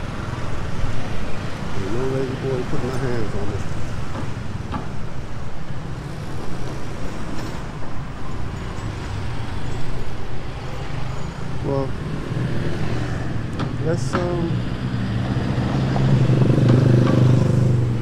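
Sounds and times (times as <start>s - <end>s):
traffic engines humming: 0.0s - 18.0s
voices: 1.7s - 3.7s, 11.6s - 12.0s, 13.6s - 14.6s.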